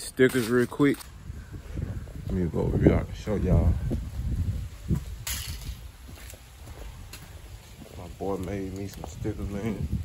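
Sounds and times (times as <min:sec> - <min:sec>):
footsteps on concrete: 0:03.3 - 0:09.8.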